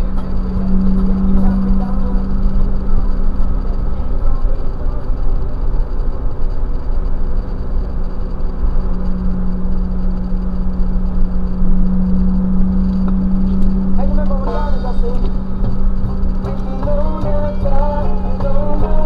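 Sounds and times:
music with wavering melody: 0.0s - 4.4s, 7.9s - 19.0s
car cabin tyre and engine drone: 0.0s - 19.0s.

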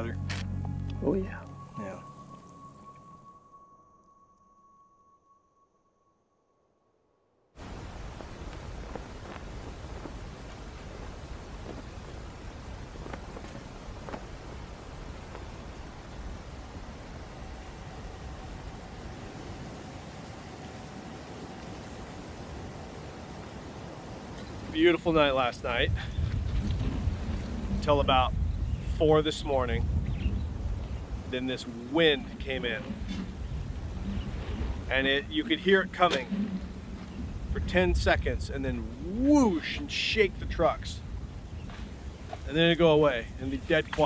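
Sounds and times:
held music note: 0.0s - 6.6s
wind on microphone: 7.6s - 39.4s.

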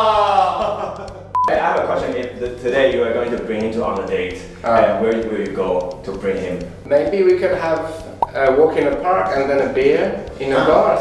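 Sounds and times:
short electronic beep: 1.4s - 1.6s.

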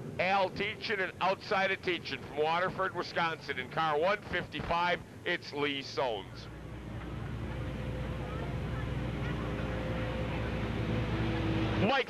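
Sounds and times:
stock car engines at low revs: 0.0s - 12.0s.

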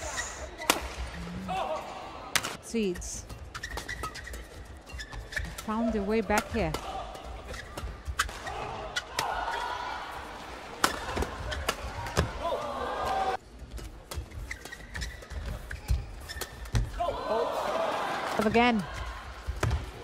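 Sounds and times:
racquets hitting shuttlecock: 10.7s - 12.4s.

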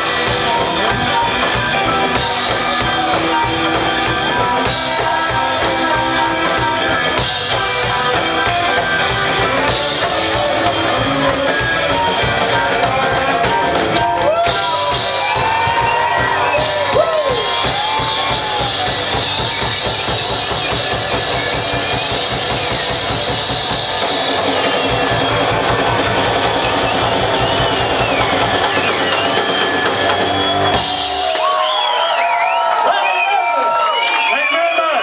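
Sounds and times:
live rockabilly band playing: 0.0s - 32.4s
drum kit pounding fast beat: 0.0s - 35.0s.

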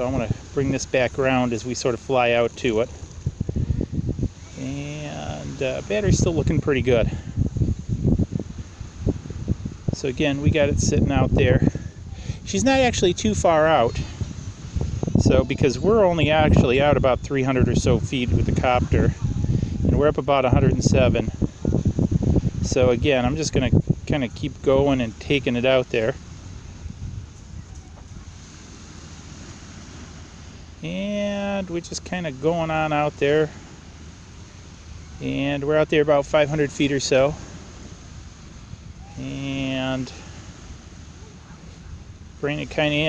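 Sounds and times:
wind buffeting microphone: 0.0s - 43.0s
man's voice: 4.5s - 7.3s, 9.9s - 14.2s, 15.1s - 19.2s, 19.8s - 21.4s, 22.6s - 26.2s, 30.8s - 33.6s, 35.2s - 37.5s, 39.0s - 40.4s, 42.4s - 43.0s.

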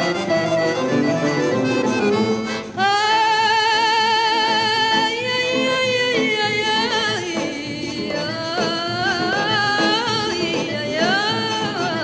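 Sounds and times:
instrumental accompaniment: 0.0s - 12.0s
woman singing with vibrato: 2.6s - 12.0s.

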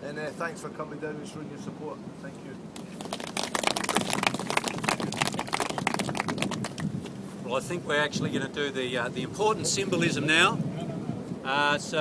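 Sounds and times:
crowd applauding: 2.8s - 7.0s.

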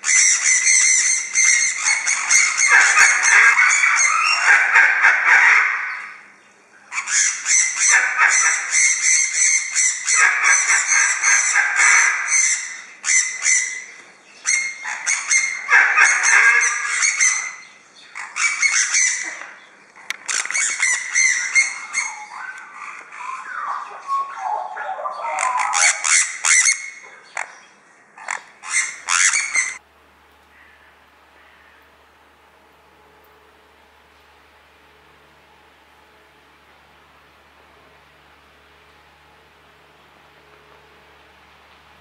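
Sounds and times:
parrots screeching: 0.0s - 6.3s, 6.9s - 19.5s, 20.3s - 27.6s, 28.2s - 29.8s.

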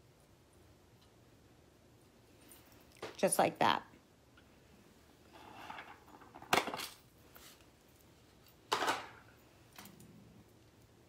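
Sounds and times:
soft rustle: 1.9s - 3.0s, 7.1s - 8.6s.

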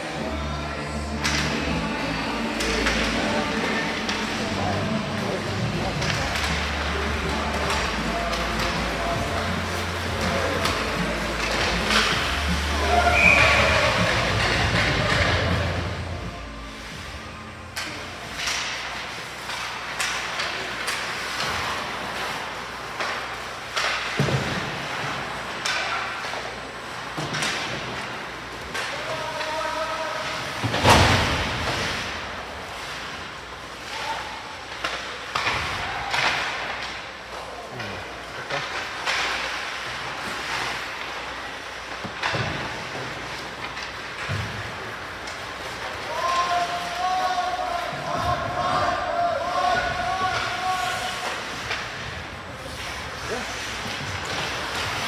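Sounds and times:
music playing: 0.0s - 18.3s
voices around rink: 0.0s - 55.0s
sticks and puck clacking on ice: 1.1s - 15.9s, 17.7s - 55.0s.

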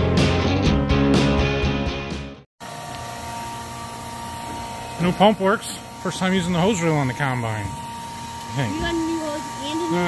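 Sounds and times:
rock guitar music: 0.0s - 2.4s
electric fuel pump humming: 2.6s - 10.0s.

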